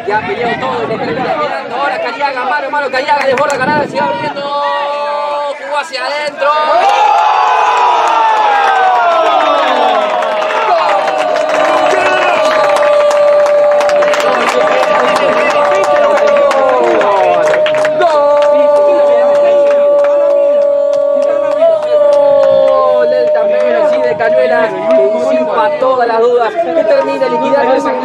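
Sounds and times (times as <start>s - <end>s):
crowd cheering: 2.9s - 28.0s.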